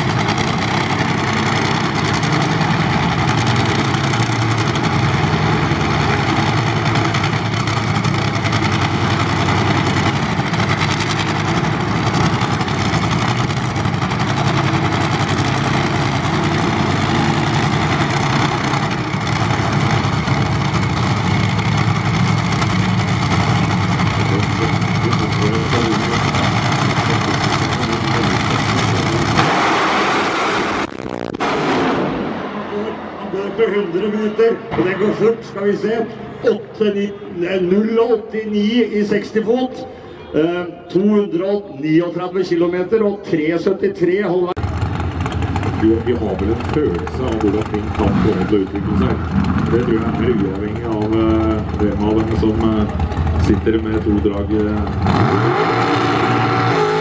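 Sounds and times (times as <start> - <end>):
dragster engine idling loud: 0.0 - 31.2, 44.6 - 57.0.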